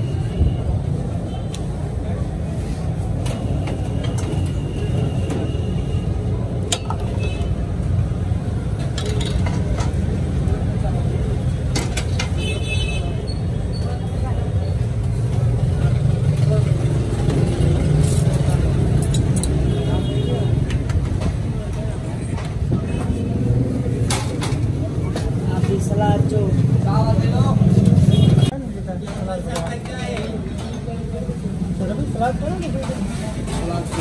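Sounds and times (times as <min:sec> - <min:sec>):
road traffic rumble: 0:00.0 - 0:34.0.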